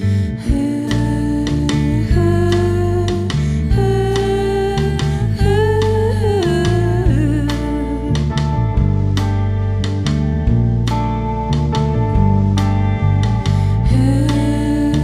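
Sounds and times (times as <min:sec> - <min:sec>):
rock band playing: 0:06.6 - 0:15.0.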